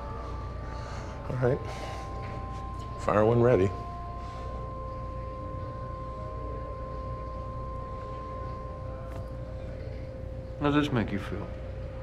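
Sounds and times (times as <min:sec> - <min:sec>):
held notes background score: 0:00.0 - 0:12.0
steady low hum: 0:00.0 - 0:12.0.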